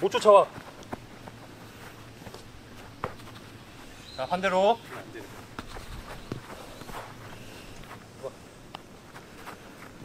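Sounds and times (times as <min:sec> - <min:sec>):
footsteps on artificial turf: 0:00.0 - 0:08.4.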